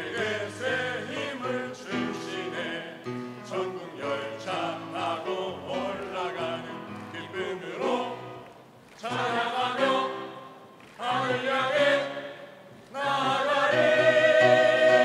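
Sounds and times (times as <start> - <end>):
mixed choir singing: 0.0 - 15.0.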